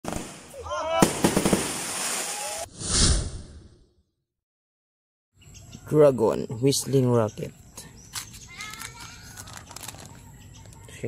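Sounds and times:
firework bang: 1.0s - 2.3s
firework whoosh: 1.2s - 3.9s.

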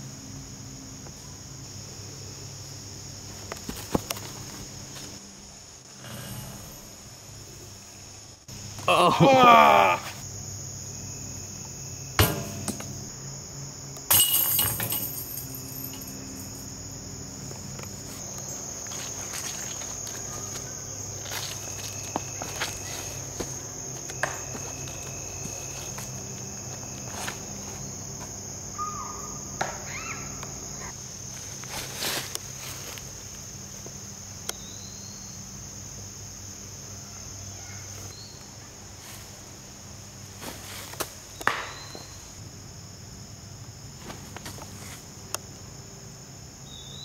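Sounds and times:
faint outdoor background noise: 0.0s - 47.0s
insects chirring: 0.0s - 47.0s.

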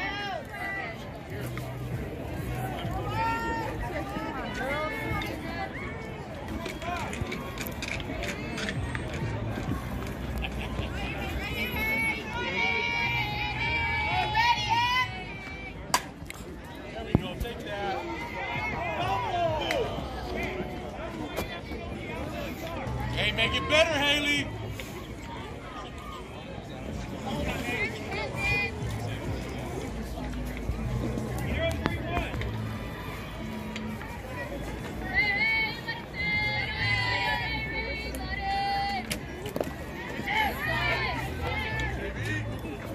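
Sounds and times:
voices and chatter: 0.0s - 42.9s.

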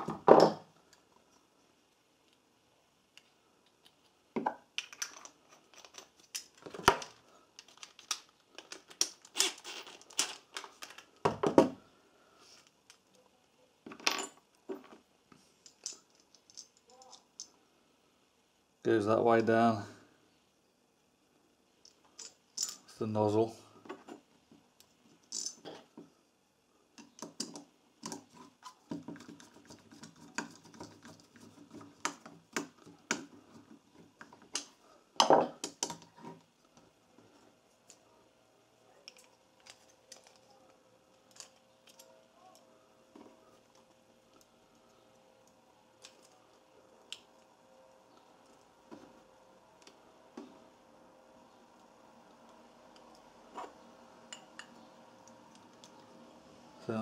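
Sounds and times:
small metal parts clicking and knocking: 4.7s - 11.2s, 15.6s - 17.6s, 21.8s - 22.9s, 25.1s - 25.9s, 27.0s - 36.1s, 41.2s - 42.6s.

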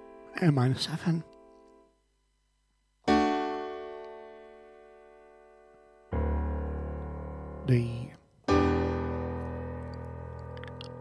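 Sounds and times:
piano chord ringing: 3.1s - 11.0s.

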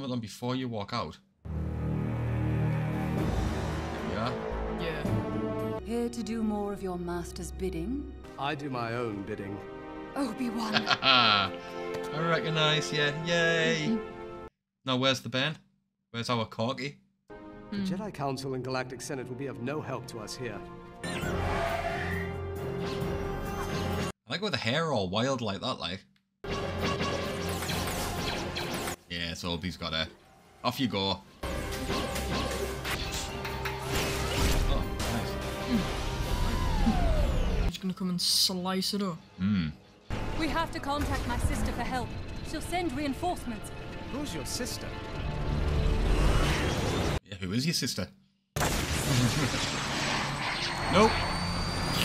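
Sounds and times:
action soundtrack music: 1.5s - 14.5s, 26.4s - 29.2s, 29.8s - 47.2s.

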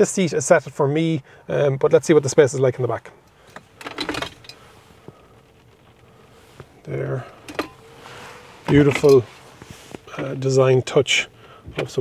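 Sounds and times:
faint steady hum: 0.0s - 12.0s
rustle: 4.3s - 10.6s.

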